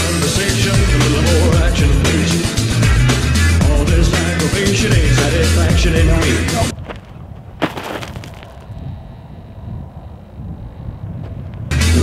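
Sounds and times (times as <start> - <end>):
wind rumbling on microphone: 6.7 - 12.0
body thump on dry ground: 6.8 - 8.7.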